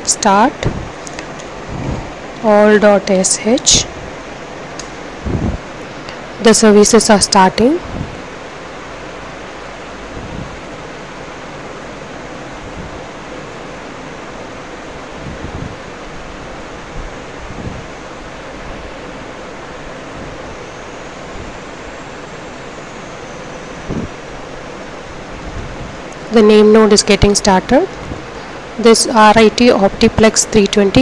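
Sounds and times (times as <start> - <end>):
faint steady hum: 0.0 - 31.0.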